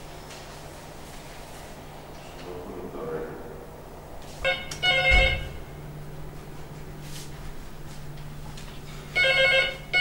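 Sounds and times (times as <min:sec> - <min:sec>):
electronic telephone ringing: 0:09.1 - 0:10.0.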